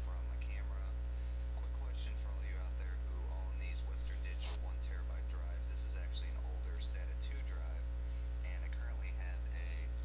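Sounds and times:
electrical mains hum: 0.0 - 10.0
faint voice speaking: 3.2 - 5.5.

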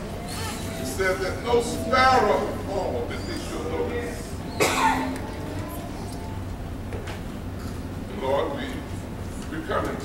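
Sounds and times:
person coughing: 4.6 - 5.2.

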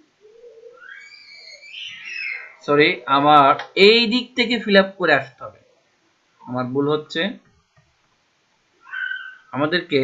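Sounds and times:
man's voice: 2.7 - 5.6.

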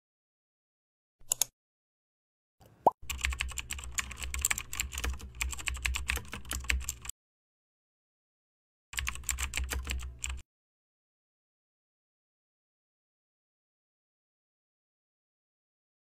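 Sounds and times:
keyboard key clicks: 1.2 - 1.5.

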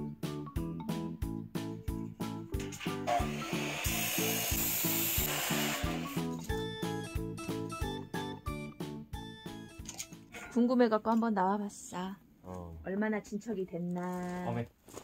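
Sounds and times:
background music with steady beat: 0.0 - 10.4
cut-off saw grinding steel: 2.6 - 6.2.

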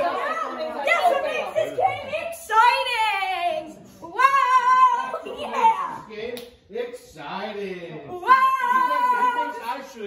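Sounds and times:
voices talking and exclaiming: 0.0 - 6.3, 8.0 - 10.0.

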